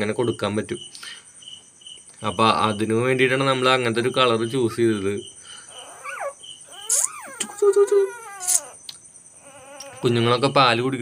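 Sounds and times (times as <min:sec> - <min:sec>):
puppy crying in high squeals: 0:05.7 - 0:10.4.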